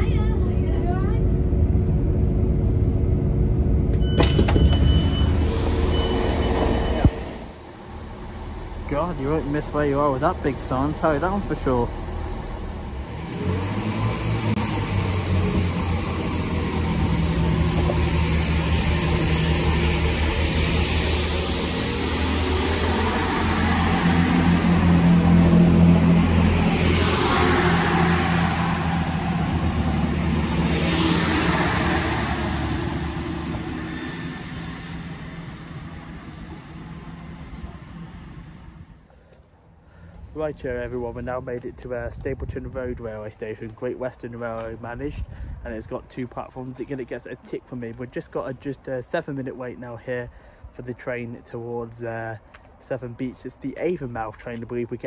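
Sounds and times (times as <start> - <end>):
diesel train pulling away: 0.0 - 46.0.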